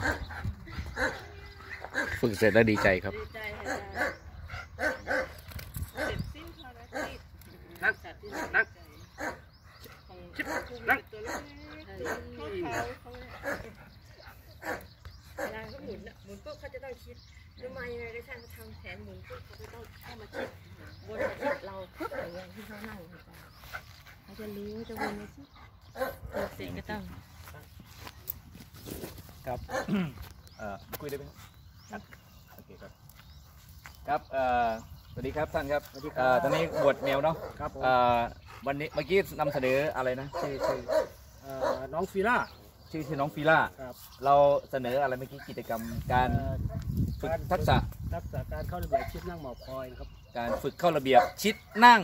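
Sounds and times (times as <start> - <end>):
dog barking: 1.0 - 3.0, 4.8 - 5.4, 8.3 - 9.5, 10.4 - 13.8, 14.6 - 15.7, 20.3 - 22.4, 24.9 - 25.3, 26.0 - 26.7, 36.4 - 37.6, 40.3 - 41.9, 48.9 - 49.3, 50.4 - 52.0.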